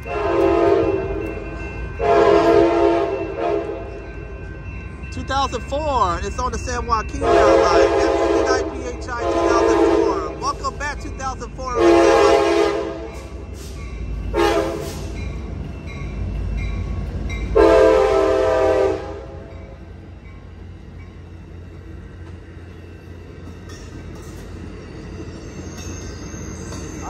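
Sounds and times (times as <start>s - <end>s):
locomotive air horn blasts: 0.0s - 1.2s, 2.0s - 3.9s, 7.2s - 10.4s, 11.8s - 13.2s, 14.3s - 15.1s, 17.6s - 19.5s
passenger cars rolling by: 0.0s - 17.6s
rumble of passing locomotive: 0.0s - 27.0s.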